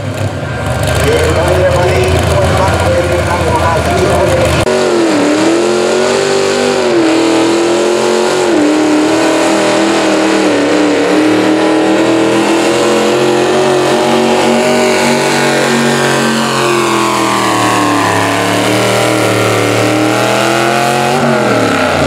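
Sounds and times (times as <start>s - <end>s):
tractor engine at high revs: 0.0s - 22.0s.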